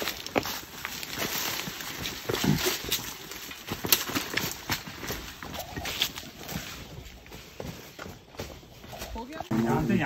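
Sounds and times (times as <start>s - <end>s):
footsteps on stones: 0.0s - 10.0s
leaves and branches rustling: 0.0s - 10.0s.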